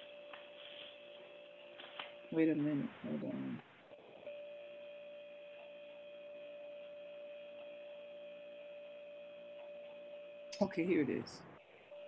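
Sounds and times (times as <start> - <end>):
faint electronic hum: 0.0 - 12.0.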